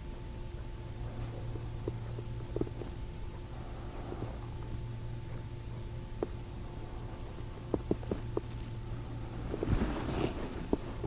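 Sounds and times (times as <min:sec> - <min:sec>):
low hum of recording noise: 0:00.0 - 0:11.0.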